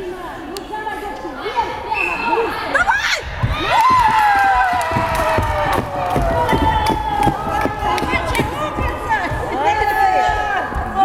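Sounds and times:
children shouting and cheering: 2.8 - 8.6.

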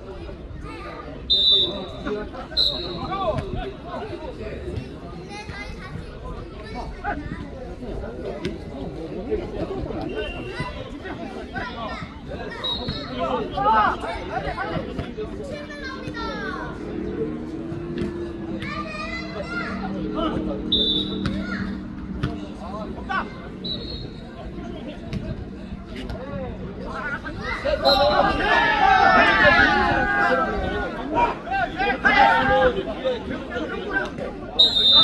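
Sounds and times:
players shouting calls: 1.2 - 4.4, 9.8 - 35.0.

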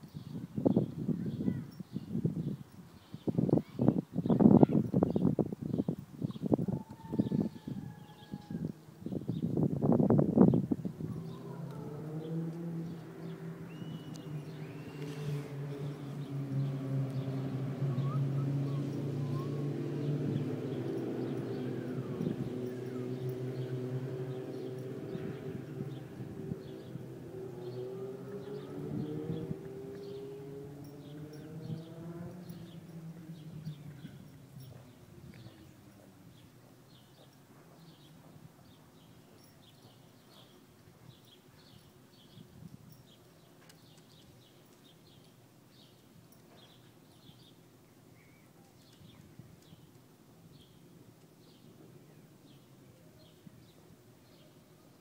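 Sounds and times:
low engine drone: 10.9 - 34.8.

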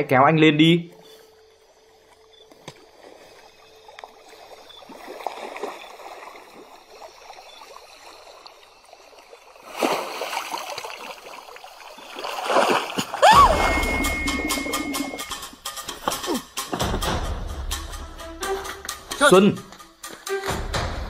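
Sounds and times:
pool water lapping and sloshing: 1.0 - 15.3
water surge: 9.1 - 15.3.

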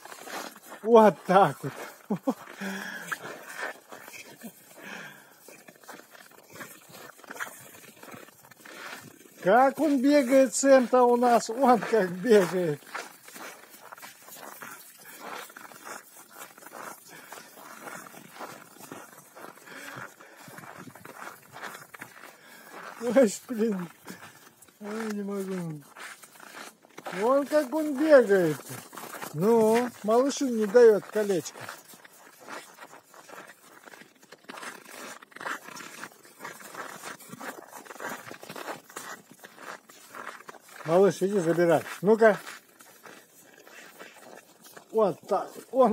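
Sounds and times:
dogs running on snow: 0.0 - 45.9.

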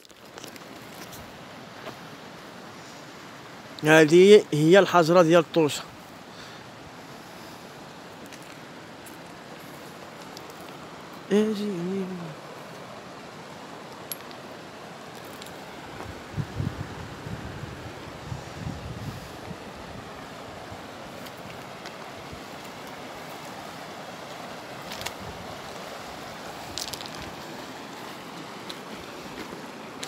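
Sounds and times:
river flowing among boulders: 0.0 - 30.0
wind buffeting microphone: 16.0 - 21.0.

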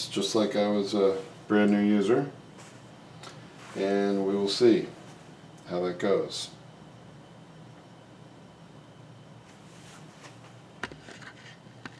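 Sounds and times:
low steady hum: 0.0 - 11.9.

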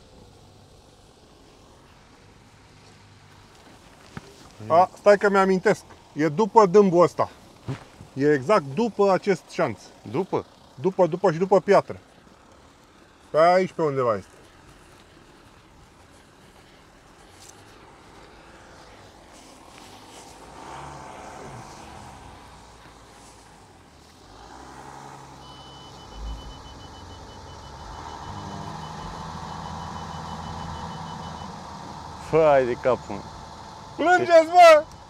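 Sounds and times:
car engine pulling under load: 0.0 - 35.0.

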